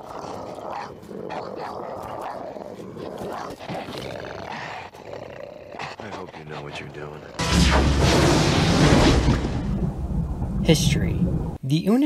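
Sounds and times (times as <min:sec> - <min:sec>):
creatures growling and roaring: 0:00.0 - 0:10.0.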